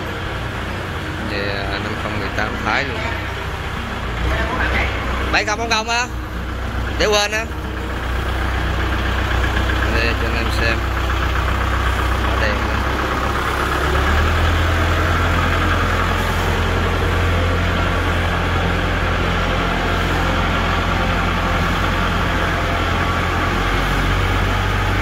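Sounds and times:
tractor diesel engine idling: 0.0 - 25.0.

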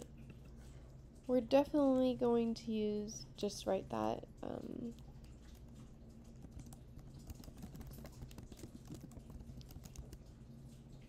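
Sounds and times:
typing on keyboard: 6.2 - 10.3.

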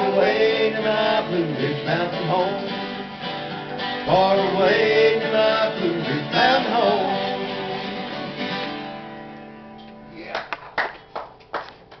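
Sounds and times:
person singing: 0.0 - 3.0, 4.1 - 8.1
acoustic guitars: 0.0 - 12.0.

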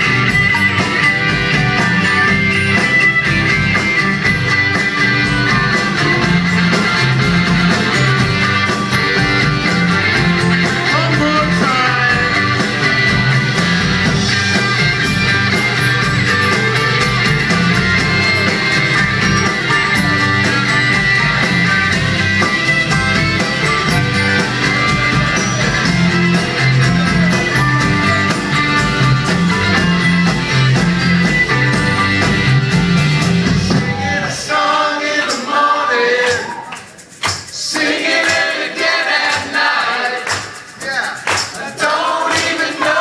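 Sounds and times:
live rock band playing: 0.0 - 43.0
voices singing along: 33.6 - 40.6, 41.6 - 43.0.

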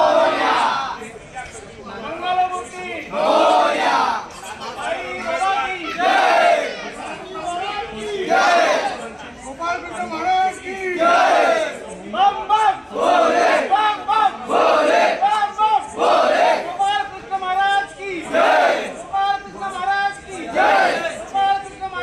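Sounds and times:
young men shouting together: 0.0 - 1.0, 3.1 - 9.0, 10.6 - 11.8, 12.7 - 16.8, 18.2 - 19.0, 20.4 - 21.2.

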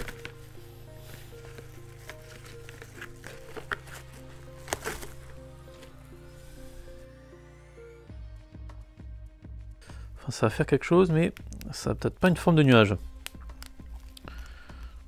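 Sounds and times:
plastic cover crinkling: 0.0 - 6.9
quiet background music: 0.0 - 15.0.

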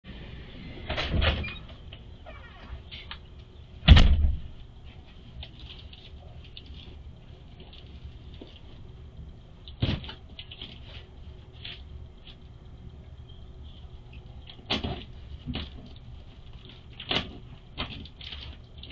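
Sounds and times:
loud thump: 3.9 - 4.5
plastic mailers crinkling: 14.4 - 18.9.

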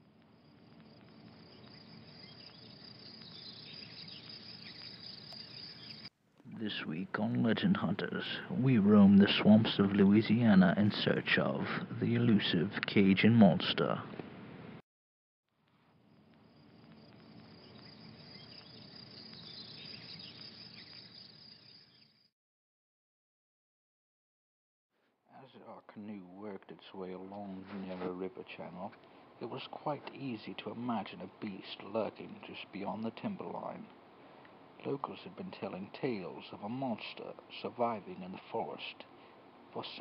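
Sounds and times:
insects chirping: 0.0 - 12.6, 15.8 - 22.3, 27.2 - 40.0.

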